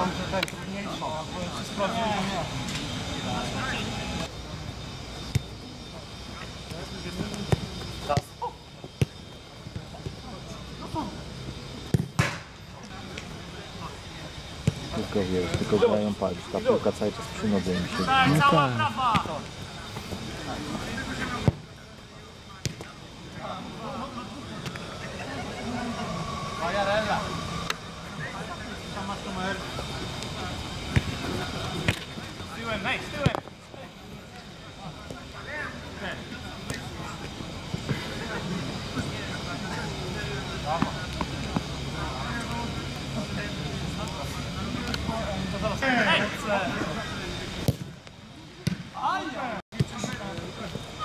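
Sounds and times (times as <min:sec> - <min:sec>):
ball being kicked: 0:11.9 - 0:12.4
players shouting: 0:15.0 - 0:21.5.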